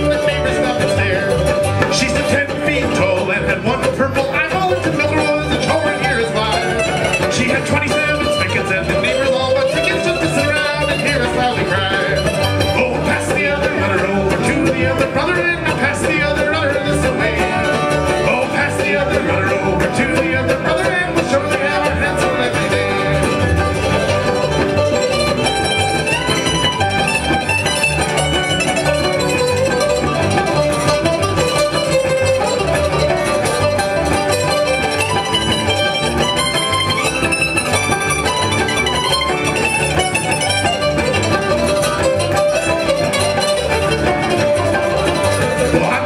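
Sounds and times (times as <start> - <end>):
bluegrass string band playing: 0.0 - 46.0.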